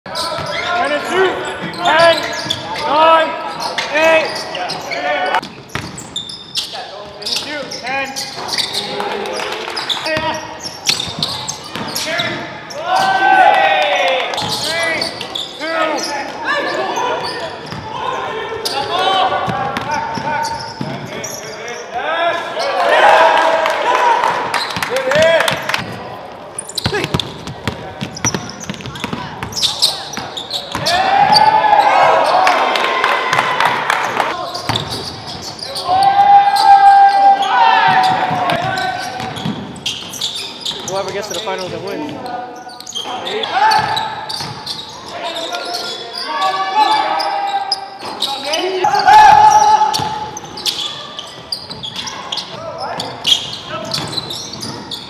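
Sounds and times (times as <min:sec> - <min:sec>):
sneakers squeaking: 0:00.1 - 0:13.4, 0:14.3 - 0:22.9, 0:24.4 - 0:55.0
basketball bouncing on hardwood floor: 0:05.5 - 0:06.0.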